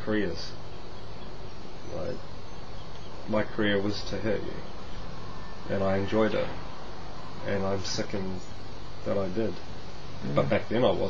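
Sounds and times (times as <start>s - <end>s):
insects hissing: 0.0s - 11.0s
man speaking a word: 1.9s - 2.2s, 3.3s - 4.7s, 5.7s - 6.6s, 7.4s - 8.4s, 10.2s - 11.0s.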